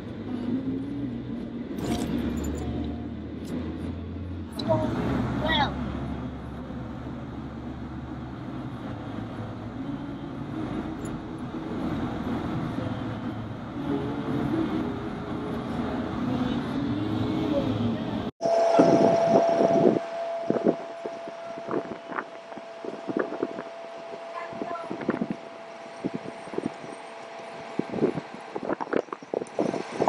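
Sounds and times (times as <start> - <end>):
car engine and road rumble: 0.0 - 30.0
wind buffeting microphone: 7.8 - 30.0
steady tone: 9.2 - 28.2.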